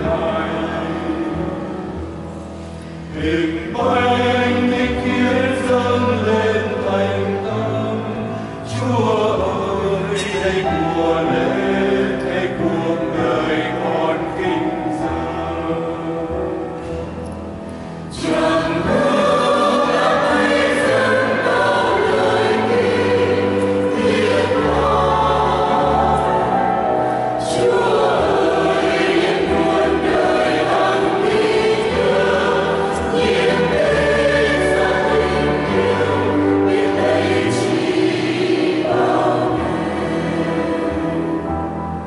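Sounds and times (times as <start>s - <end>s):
mixed choir singing a hymn: 0.0s - 42.0s.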